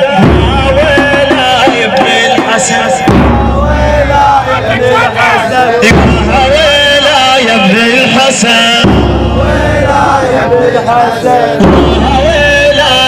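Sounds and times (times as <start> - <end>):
crowd voices chanting: 0.0 - 13.0
person chanting lament over loudspeakers: 0.0 - 13.0.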